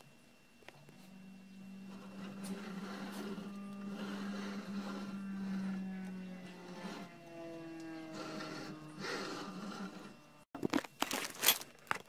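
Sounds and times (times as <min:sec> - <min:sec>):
stepper motors humming and whining: 0:00.0 - 0:10.6.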